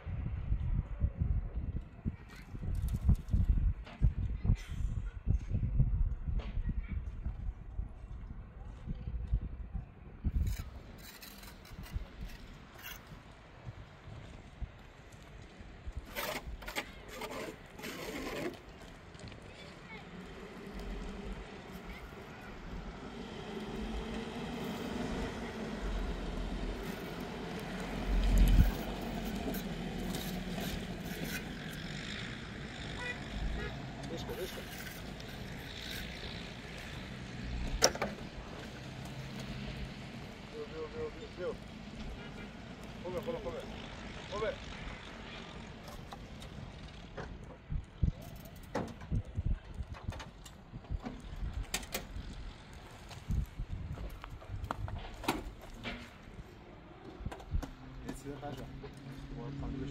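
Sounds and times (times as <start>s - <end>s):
footsteps on stony ground: 50.8s - 57.2s.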